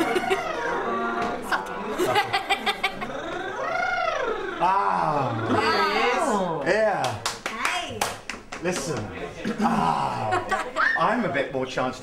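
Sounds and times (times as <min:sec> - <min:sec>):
high-pitched excited laughter: 0:00.0 - 0:01.0, 0:02.0 - 0:04.3
long squeal: 0:03.2 - 0:06.2.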